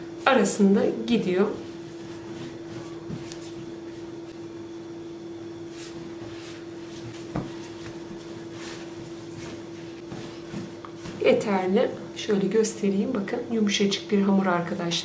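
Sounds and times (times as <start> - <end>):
steady hum: 0.0 - 15.0
hands kneading dough: 1.0 - 4.4, 5.6 - 11.8.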